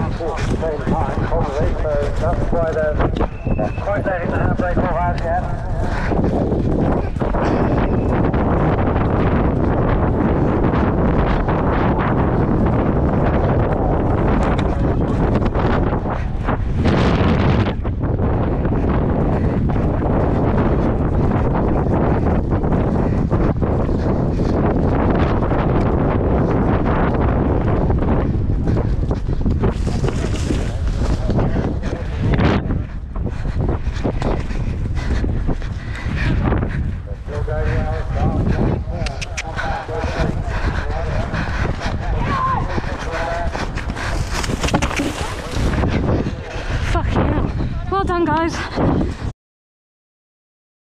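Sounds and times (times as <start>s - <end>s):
wind buffeting microphone: 0.0s - 49.3s.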